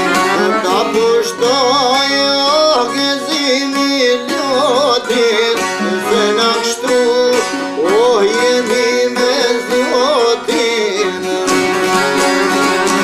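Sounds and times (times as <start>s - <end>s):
plucked lutes: 0.0s - 13.0s
violin melody with vibrato: 0.0s - 13.0s.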